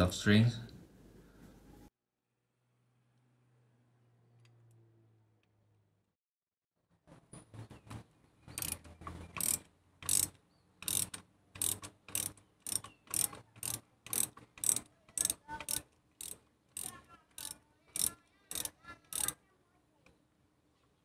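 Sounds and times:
socket ratchet clicking: 8.5 - 19.4.

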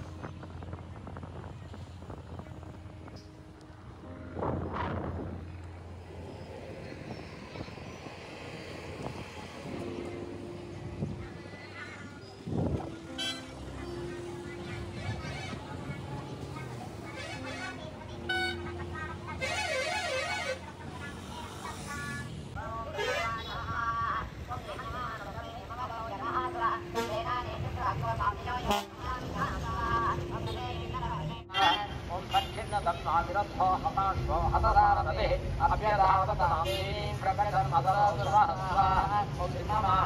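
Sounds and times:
bus passing: 0.0 - 40.0
road rumble: 0.0 - 40.0
vehicle engines: 0.0 - 40.0
voices: 6.3 - 40.0.

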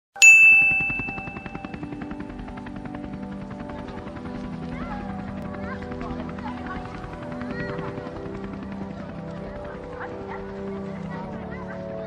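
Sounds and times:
bell ringing: 0.2 - 2.4.

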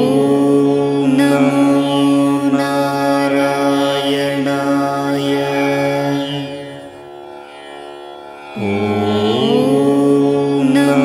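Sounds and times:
steady low drone: 0.0 - 11.0
voice chanting a long note: 0.0 - 11.0.

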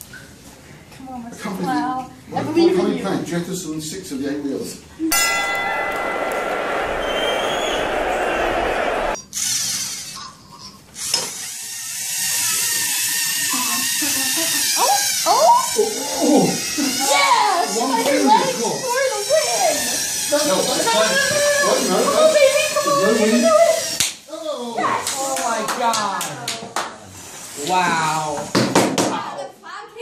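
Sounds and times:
excited voices: 5.2 - 9.2
small electric motors whining: 11.0 - 21.6.

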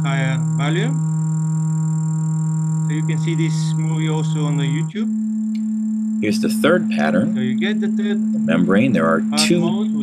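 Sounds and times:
steady low tone: 0.0 - 1.0, 2.7 - 10.0.

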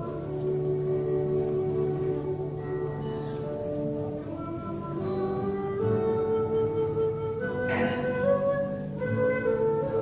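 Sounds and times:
acoustic guitar: 0.0 - 10.0
slow melody of held notes: 0.0 - 10.0.

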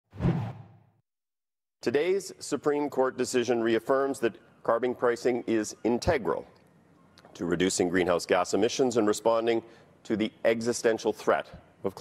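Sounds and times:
whoosh sound effect: 0.1 - 0.8.

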